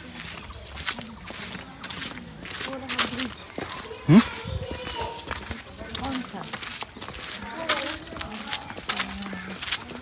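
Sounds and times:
footsteps on brick paving: 0:00.0 - 0:10.0.

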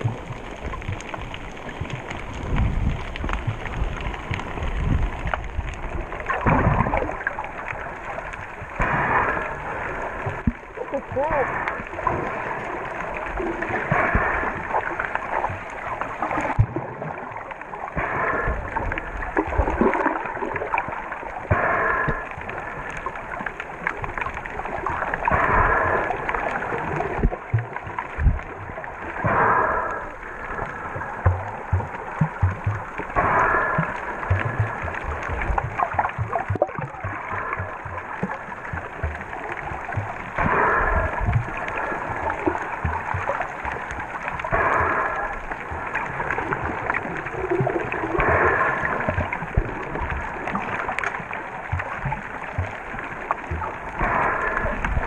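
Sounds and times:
muffled water rushing underwater: 0:00.0 - 0:55.0.

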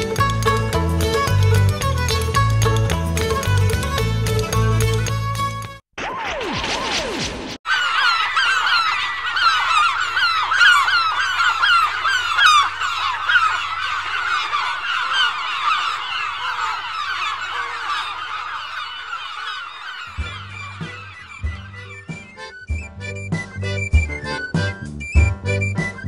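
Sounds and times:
many birds squawking: 0:07.7 - 0:24.5.

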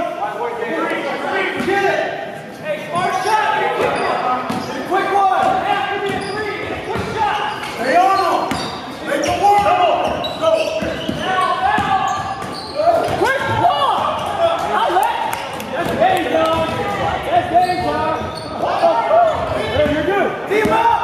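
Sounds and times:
players calling out: 0:00.0 - 0:21.0
sneakers squeaking: 0:02.5 - 0:21.0
basketball bouncing: 0:15.8 - 0:17.0.

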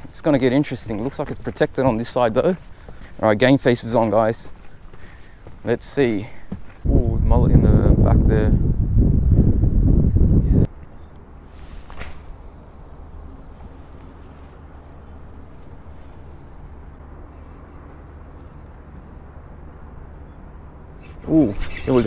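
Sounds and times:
wind buffeting microphone: 0:06.5 - 0:11.0
low hum: 0:08.6 - 0:22.0.

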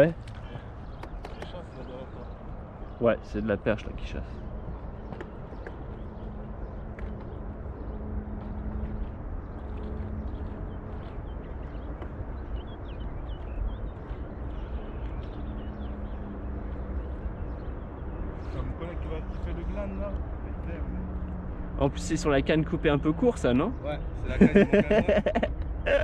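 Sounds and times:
wind rumbling on microphone: 0:00.0 - 0:25.9
water lapping against boat hull: 0:04.7 - 0:17.2.

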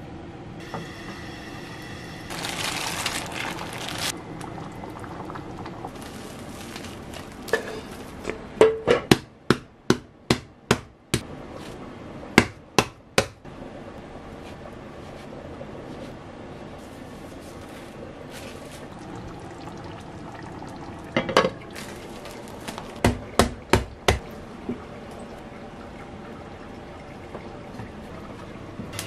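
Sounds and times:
sauce bubbling in a pan: 0:18.9 - 0:21.8.

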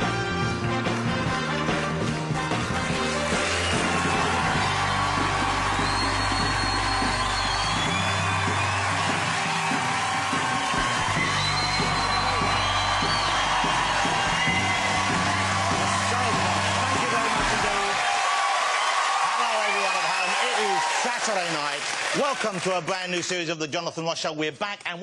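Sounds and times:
television theme music: 0:00.0 - 0:24.3
studio audience cheering and whooping: 0:02.5 - 0:23.3.

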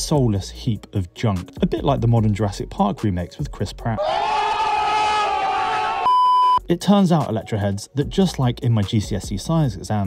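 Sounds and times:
person screaming: 0:04.0 - 0:06.1.

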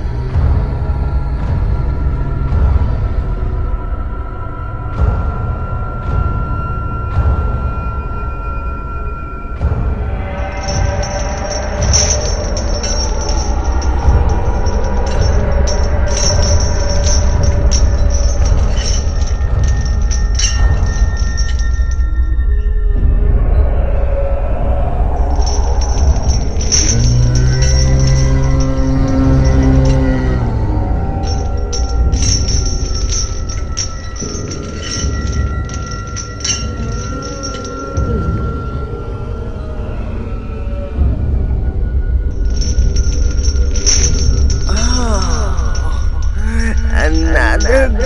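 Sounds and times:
low rumbling drone: 0:00.0 - 0:48.0.

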